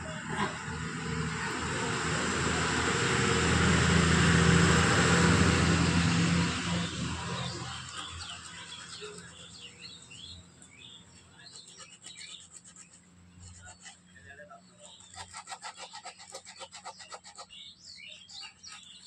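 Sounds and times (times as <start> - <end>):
vehicle passing by: 0.0 - 11.5
birds chirping: 0.0 - 19.0.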